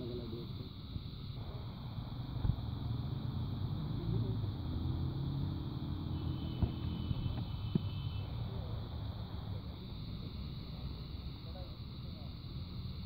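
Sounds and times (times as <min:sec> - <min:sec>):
low engine-like rumble: 0:00.0 - 0:13.0
faint drone rising in pitch: 0:01.4 - 0:07.4.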